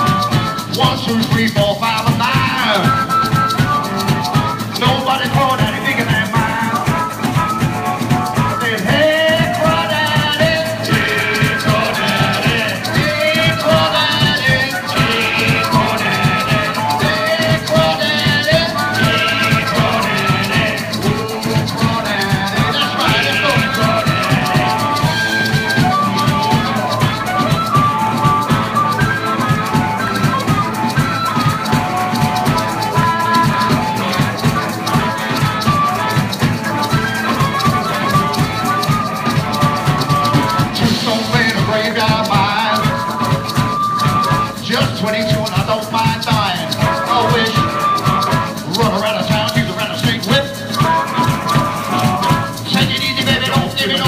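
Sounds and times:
drums: 0.0 - 54.0
electric guitar: 0.0 - 54.0
harmonica solo: 0.0 - 54.0
maracas shaking: 0.0 - 54.0.

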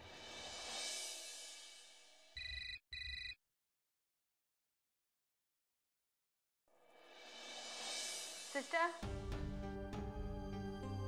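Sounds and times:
telephone ringing: 2.4 - 3.4.

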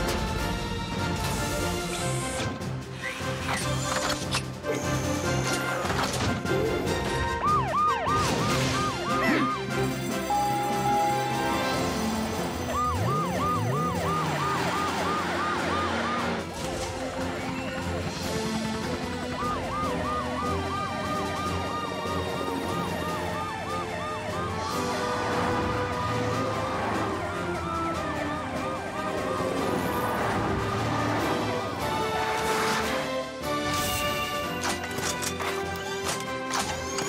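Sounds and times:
upbeat background music: 0.0 - 37.0
cartoon sirens warbling and wailing: 6.4 - 32.4.

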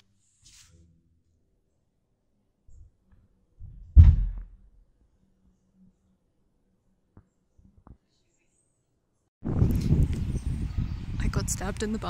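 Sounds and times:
loud deep bang: 3.9 - 4.6.

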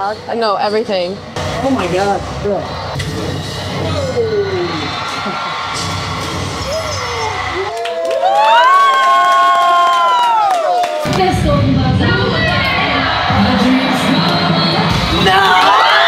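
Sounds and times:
young people cheering and screaming: 3.6 - 16.0
high-pitched scream: 3.9 - 10.6.

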